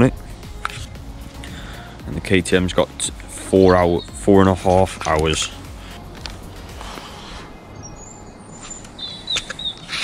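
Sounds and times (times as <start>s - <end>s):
bird whistled call: 7.1s - 10.0s.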